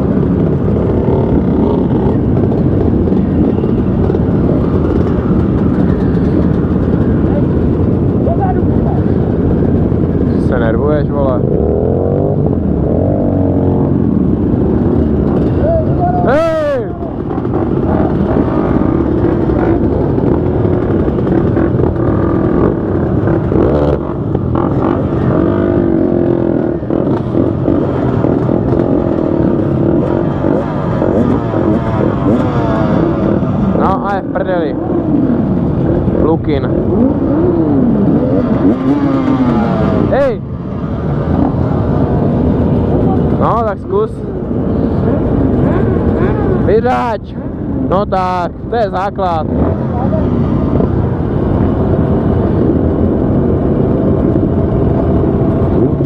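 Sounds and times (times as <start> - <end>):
motorcycle engines idling and blipping: 0.0 - 56.0.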